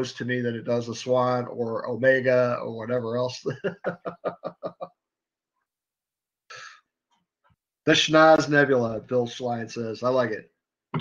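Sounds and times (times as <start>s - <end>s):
man laughing: 3.4s - 4.9s.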